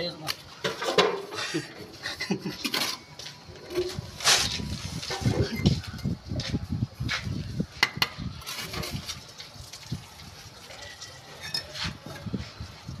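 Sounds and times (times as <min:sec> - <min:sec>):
trowel clinking against brick: 0:10.8 - 0:12.0.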